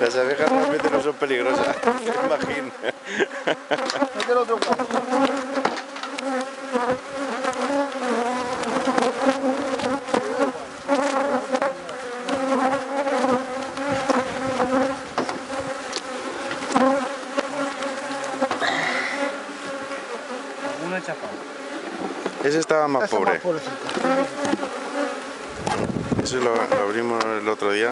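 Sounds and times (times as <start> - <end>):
hive tool scraping wood: 0.0 - 27.4
bees buzzing: 0.0 - 27.9.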